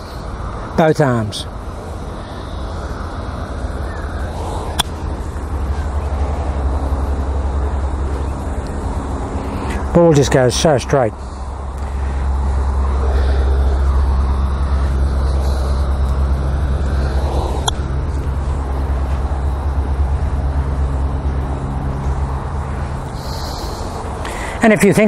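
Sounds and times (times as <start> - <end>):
low engine hum: 0.0 - 25.0
golf iron striking ball: 4.7 - 5.0.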